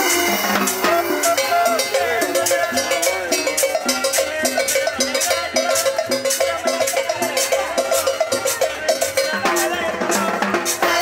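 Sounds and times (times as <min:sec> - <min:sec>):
button accordion melody: 0:00.0 - 0:11.0
hand percussion beat: 0:00.0 - 0:11.0
plucked upright bass: 0:00.0 - 0:11.0.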